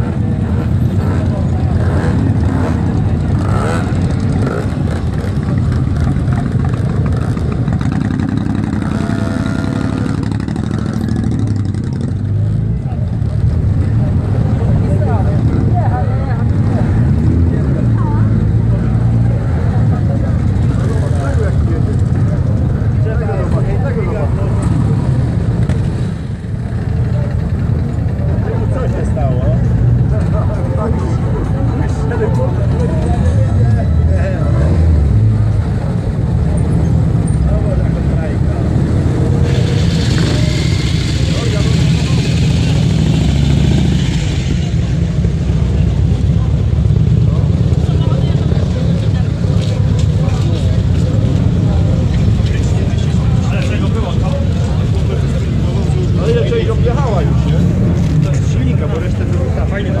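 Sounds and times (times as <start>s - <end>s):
motorcycle engines rumbling: 0.0s - 60.0s
people's voices: 0.0s - 60.0s.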